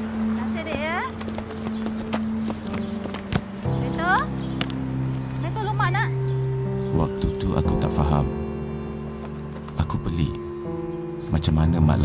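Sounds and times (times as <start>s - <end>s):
held note of background music: 0.0s - 12.0s.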